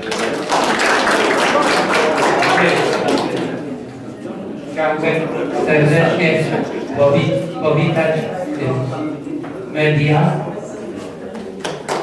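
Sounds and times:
audience applauding: 0.0 - 3.6, 11.4 - 12.0.

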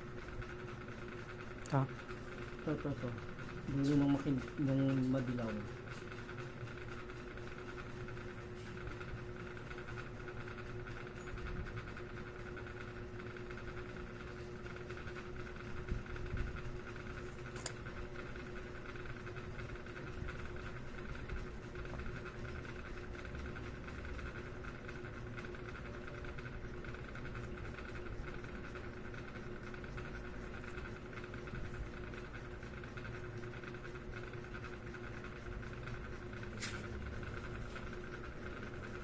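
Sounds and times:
room hum: 0.0 - 39.0.

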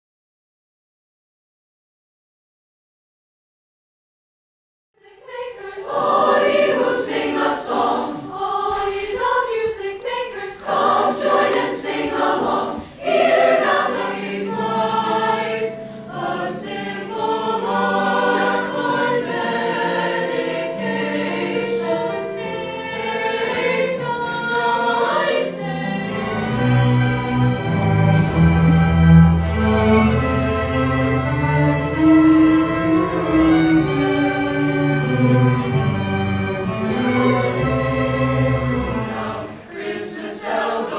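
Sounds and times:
mixed choir singing: 5.0 - 40.9.

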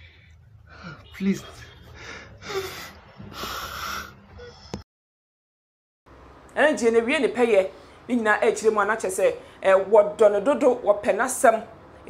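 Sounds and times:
man crying with sharp breaths: 1.8 - 4.7.

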